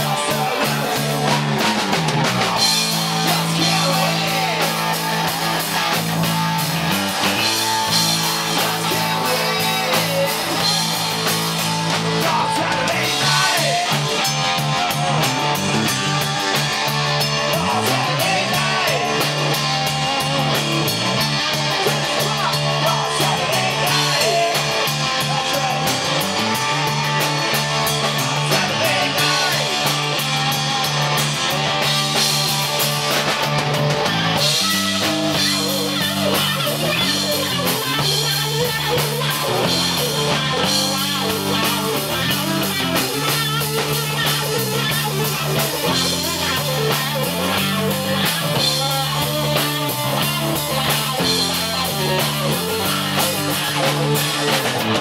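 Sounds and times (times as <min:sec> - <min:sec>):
male lead vocal: 0:00.0 - 0:06.1, 0:07.2 - 0:32.5, 0:34.3 - 0:54.8
drum kit: 0:00.0 - 0:55.0
electric bass: 0:00.0 - 0:55.0
electric guitar: 0:00.0 - 0:55.0.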